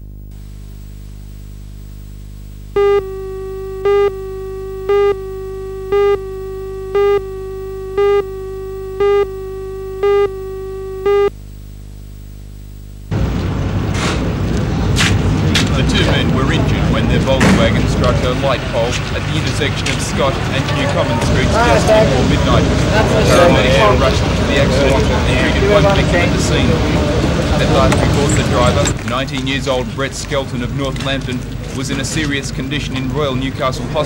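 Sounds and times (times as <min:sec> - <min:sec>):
low electrical hum: 0:00.0 - 0:34.0
steady beep tone: 0:02.8 - 0:11.3.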